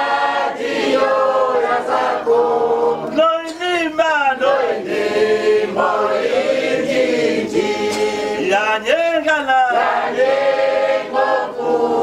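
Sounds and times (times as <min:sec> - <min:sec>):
group singing together: 0:00.0 - 0:03.4, 0:04.2 - 0:12.0.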